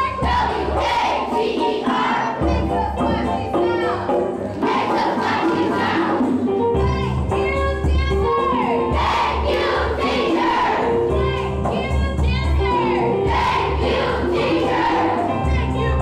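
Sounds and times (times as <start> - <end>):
people singing: 0.0 - 3.2, 4.6 - 6.4, 8.9 - 11.1, 12.7 - 16.0.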